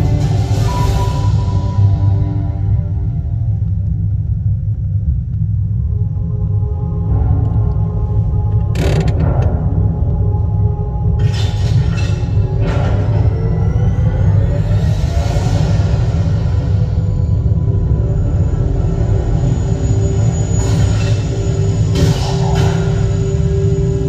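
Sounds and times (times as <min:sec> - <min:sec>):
dark sci-fi soundtrack music: 0:00.0 - 0:24.0
deep steady rumble: 0:00.0 - 0:24.0.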